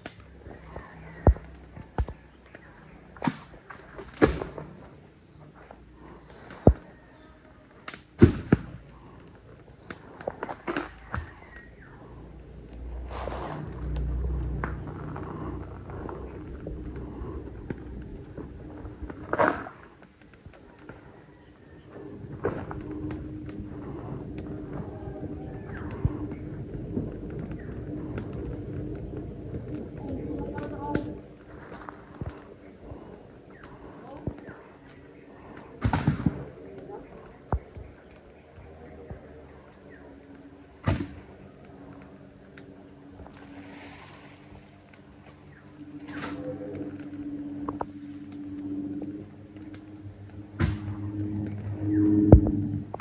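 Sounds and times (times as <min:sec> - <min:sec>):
birds calling: 0:00.0 - 0:53.0
steady engine hum: 0:00.0 - 0:53.0.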